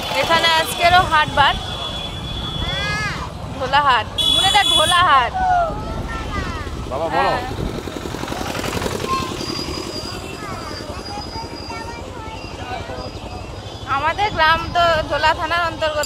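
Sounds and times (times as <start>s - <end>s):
road and vehicle rumble: 0.0s - 16.0s.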